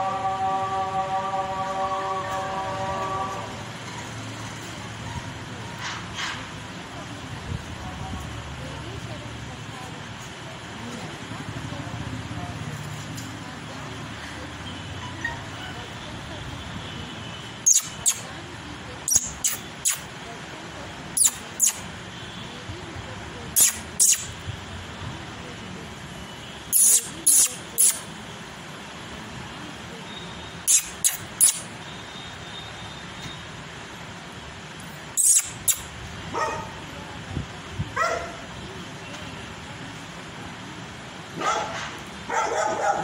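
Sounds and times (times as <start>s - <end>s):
dog barking: 36.3s - 36.8s, 38.0s - 38.5s, 41.4s - 43.0s.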